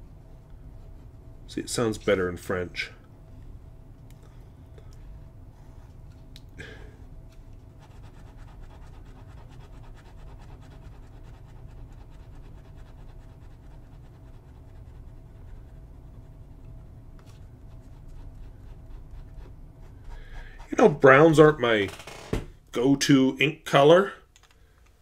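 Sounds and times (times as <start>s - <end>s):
fountain pen scratching paper: 7.8s - 16.6s, 17.6s - 21.0s.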